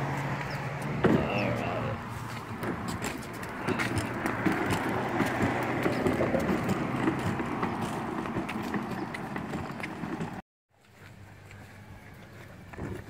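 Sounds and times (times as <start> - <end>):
plastic wheels rolling on concrete: 2.1 - 10.4.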